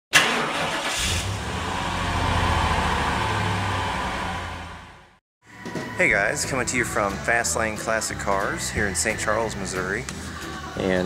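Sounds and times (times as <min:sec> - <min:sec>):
car engine starting and running: 0:00.1 - 0:05.2.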